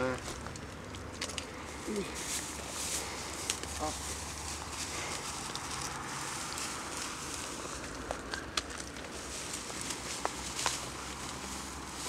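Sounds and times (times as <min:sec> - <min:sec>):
plastic bag rustling: 0:01.1 - 0:12.0.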